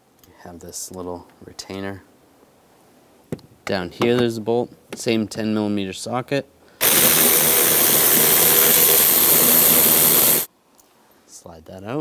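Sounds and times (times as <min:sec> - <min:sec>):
power ratchet whirring: 0:06.8 - 0:10.5.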